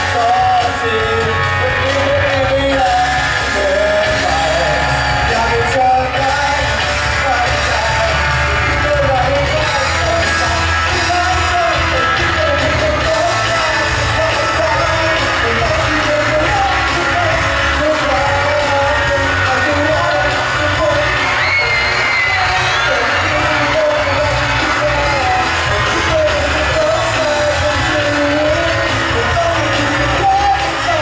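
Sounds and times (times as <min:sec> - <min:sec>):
audience yelling along: 0:00.0 - 0:31.0
loud pop-rock backing music: 0:00.0 - 0:31.0
man singing into a microphone: 0:00.0 - 0:31.0.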